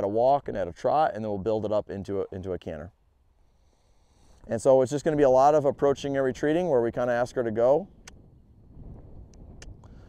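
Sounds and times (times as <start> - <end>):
wind rumble on microphone: 4.4 - 10.0.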